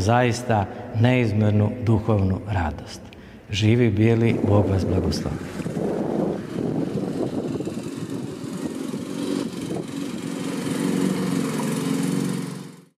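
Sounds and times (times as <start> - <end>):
engine humming: 4.2 - 12.9.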